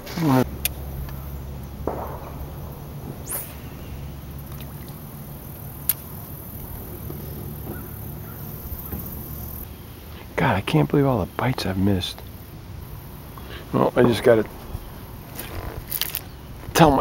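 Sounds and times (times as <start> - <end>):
rising swish: 2.2 - 4.8.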